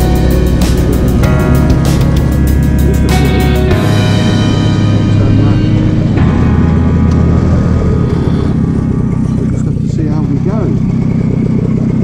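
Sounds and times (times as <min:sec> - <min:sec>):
two-stroke motorcycle engine: 0:00.0 - 0:12.0.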